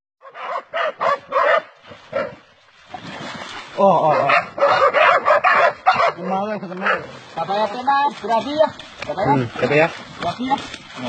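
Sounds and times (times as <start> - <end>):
dogs barking excitedly: 0.2 - 2.3, 4.1 - 7.2.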